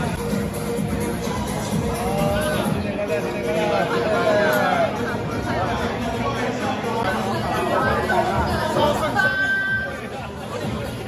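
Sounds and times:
background music: 0.0 - 11.0
crowd chatter: 0.0 - 11.0.

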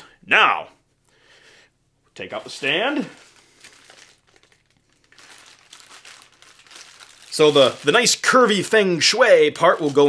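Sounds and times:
plastic wrapping crinkling: 2.4 - 10.0.

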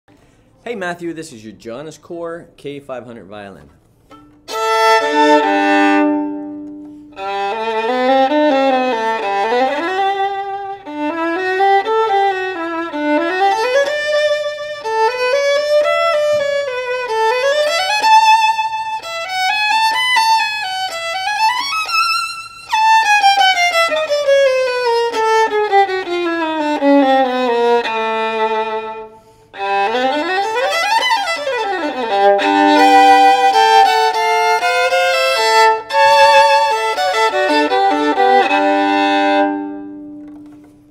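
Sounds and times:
solo violin played with bow: 4.0 - 40.9.

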